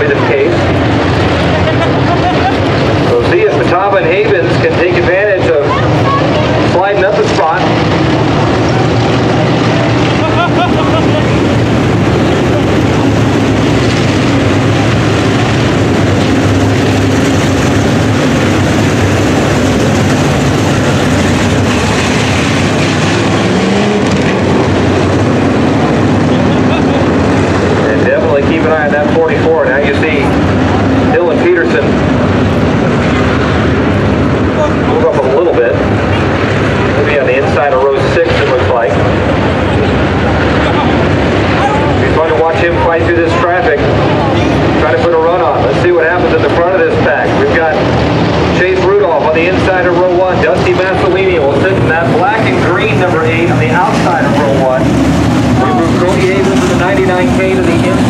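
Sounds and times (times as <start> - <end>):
race car engines droning: 0.0 - 58.0.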